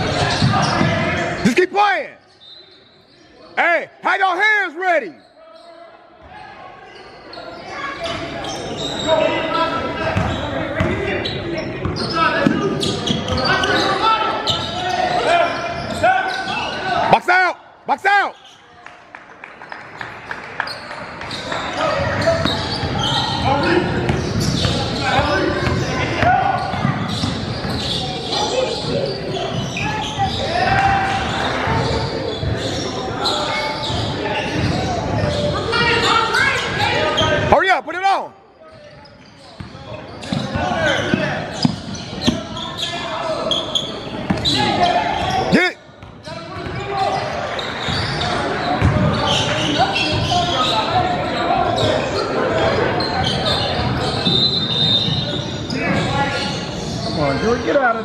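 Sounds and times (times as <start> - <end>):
shouts and chatter: 0.0 - 19.1, 19.9 - 58.0
basketball bouncing on wooden floor: 48.8 - 49.1.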